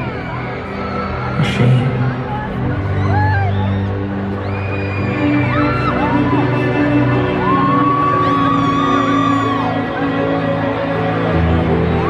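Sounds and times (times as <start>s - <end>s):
fans screaming and whooping: 0.0s - 12.0s
slow ambient music: 0.0s - 12.0s.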